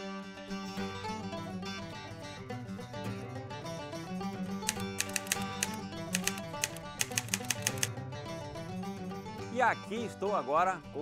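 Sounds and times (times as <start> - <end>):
plucked string music: 0.5 - 9.4
sharp rapid clicks: 4.5 - 7.9.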